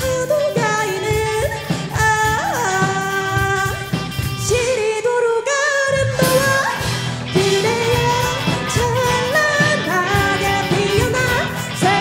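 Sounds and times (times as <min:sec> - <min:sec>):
rock band playing: 0:00.0 - 0:05.0, 0:06.0 - 0:12.0
woman singing: 0:00.0 - 0:12.0.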